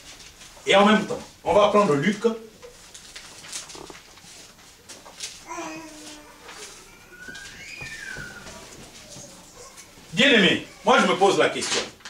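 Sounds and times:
pages rustling and turning: 0:00.0 - 0:01.2, 0:02.1 - 0:12.0.

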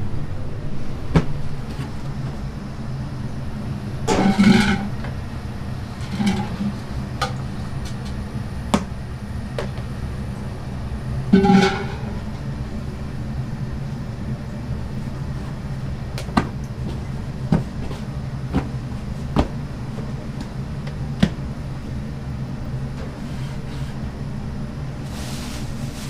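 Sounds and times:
kitchen machinery humming: 0:00.0 - 0:26.0
clicks and knocks of kitchen work: 0:04.1 - 0:05.1, 0:11.4 - 0:12.3.

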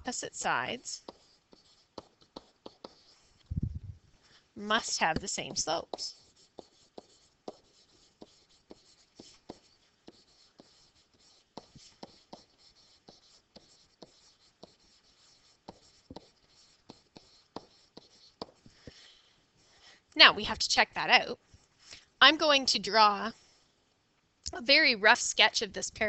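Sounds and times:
stylus tapping and scratching: 0:00.0 - 0:03.6, 0:04.7 - 0:19.0.

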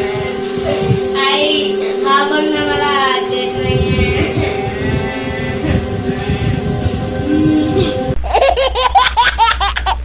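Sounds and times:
held drone note: 0:00.0 - 0:08.2
high singing voice: 0:00.0 - 0:08.2.

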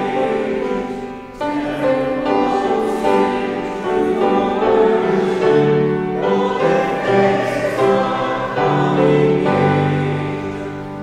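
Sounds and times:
congregation singing a hymn: 0:00.0 - 0:11.0
grand piano: 0:00.0 - 0:11.0.

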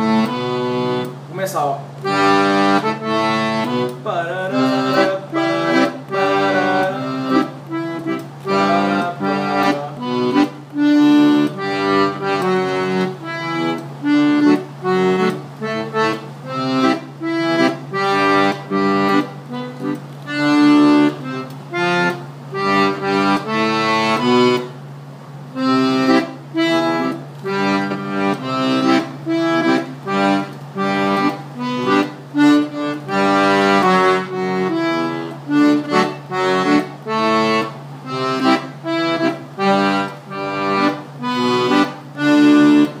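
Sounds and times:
button accordion melody: 0:00.0 - 0:43.0.

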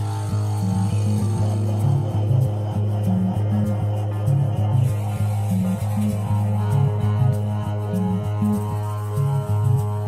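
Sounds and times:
bass riff: 0:00.0 - 0:10.0
instrumental rock music: 0:00.0 - 0:10.0.

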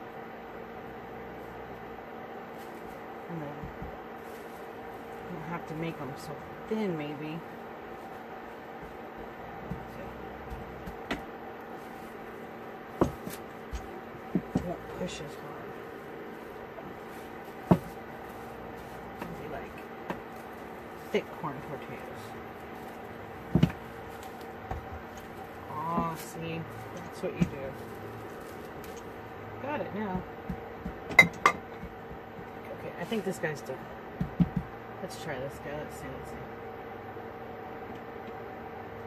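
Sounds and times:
steady hum: 0:00.0 - 0:39.0
hands pressing dough under plastic: 0:08.0 - 0:15.1, 0:15.8 - 0:21.3, 0:22.4 - 0:29.2, 0:30.1 - 0:33.2, 0:34.1 - 0:34.8
soft thumps: 0:08.7 - 0:12.2, 0:13.0 - 0:15.0, 0:16.7 - 0:20.5, 0:22.7 - 0:29.0, 0:34.1 - 0:34.8.

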